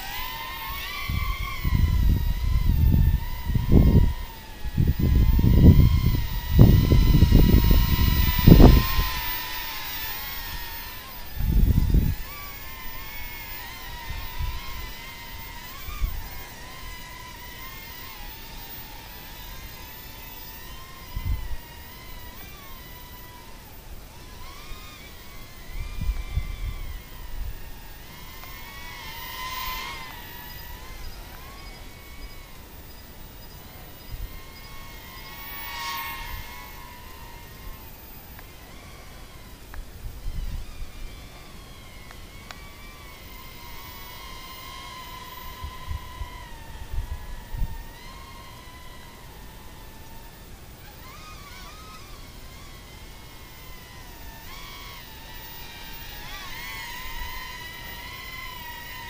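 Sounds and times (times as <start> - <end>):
toy drone propellers whining: 0.0 - 59.0.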